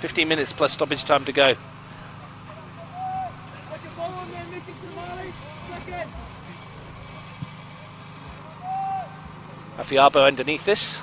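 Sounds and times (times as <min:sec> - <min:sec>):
steady low hum: 0:00.0 - 0:11.0
distant shouts from footballers: 0:01.7 - 0:09.7.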